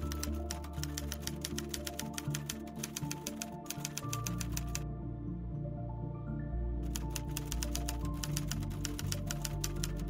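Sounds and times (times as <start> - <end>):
typewriter keystroke clicks: 0.0 - 4.8, 6.9 - 10.0
background music with low notes: 0.0 - 10.0.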